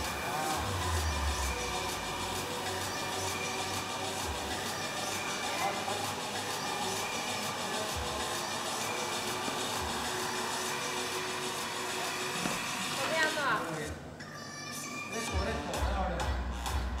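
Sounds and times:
gym background music: 0:00.0 - 0:17.0.

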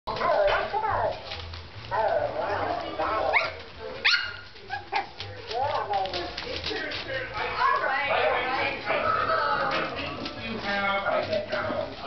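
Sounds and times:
puppy yelping: 0:02.0 - 0:05.2
puppy yapping and barking: 0:03.2 - 0:05.1.

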